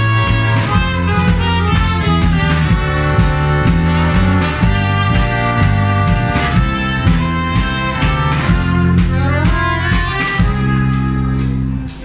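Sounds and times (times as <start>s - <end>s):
bass: 0.0s - 12.0s
drum beats: 0.0s - 12.0s
violin: 0.0s - 12.0s.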